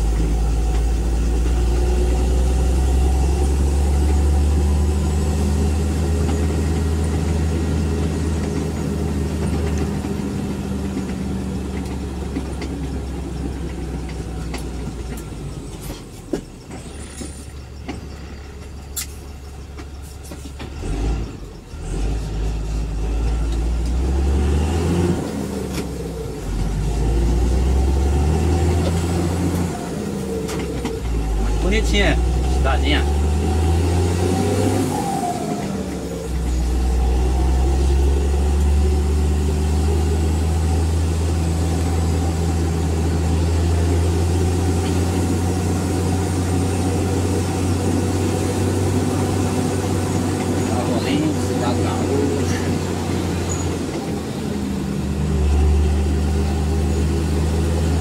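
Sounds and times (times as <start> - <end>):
vehicle engine from inside cab: 0.0 - 58.0.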